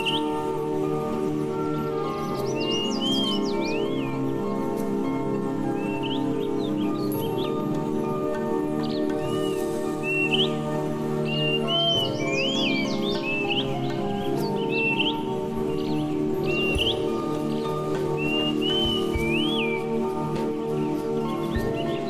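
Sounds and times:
bird chirps: 0.0 - 0.5, 1.9 - 4.5, 5.6 - 8.0, 8.7 - 22.0
slow instrumental music: 0.0 - 22.0.

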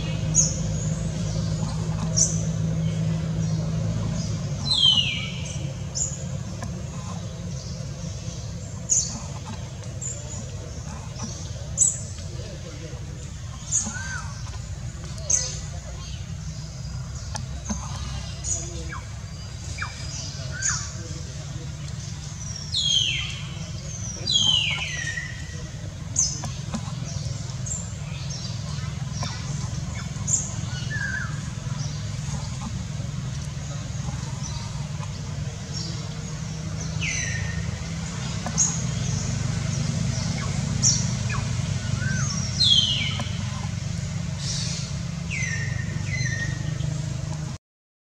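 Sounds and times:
steady low hum: 0.0 - 47.6.

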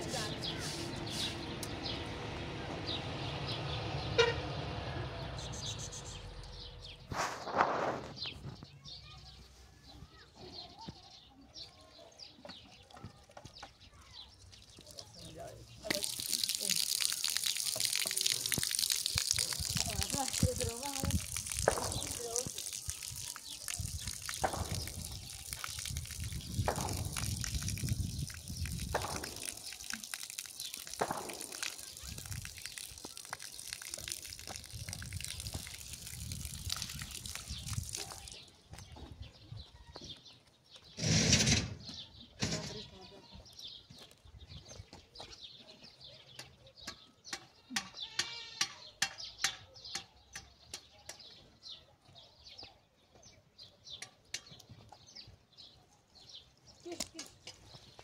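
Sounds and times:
water running from tap: 14.6 - 38.4.

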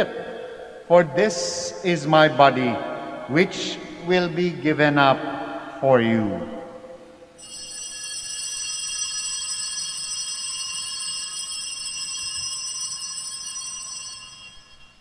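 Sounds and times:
altar bells ringing: 0.0 - 0.9, 5.3 - 15.0.

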